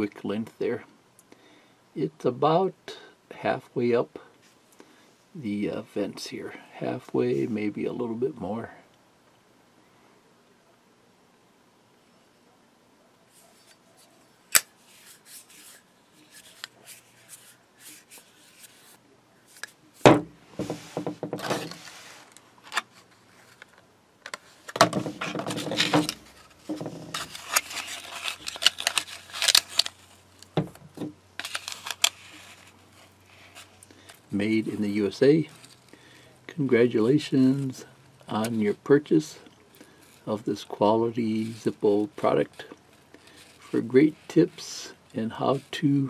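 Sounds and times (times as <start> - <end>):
plastic package crinkling: 21.6 - 30.6, 31.3 - 34.3.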